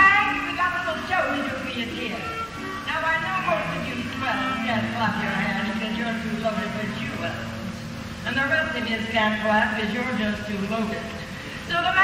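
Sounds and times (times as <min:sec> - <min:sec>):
music playing: 0:00.0 - 0:10.8.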